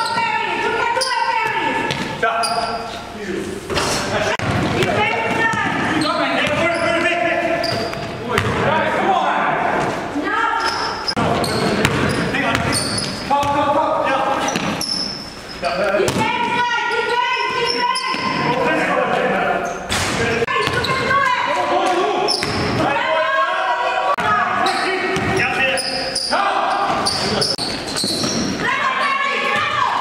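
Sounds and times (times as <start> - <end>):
sneakers squeaking: 0.0 - 8.7, 9.7 - 22.9, 24.2 - 30.0
players calling out: 0.0 - 30.0.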